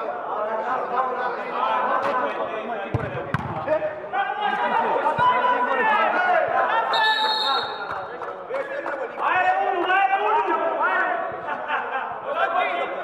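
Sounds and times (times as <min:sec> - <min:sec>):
football kicked with a thud: 0:02.9 - 0:03.8
players shouting: 0:02.9 - 0:07.9
referee's whistle blast: 0:06.9 - 0:07.9.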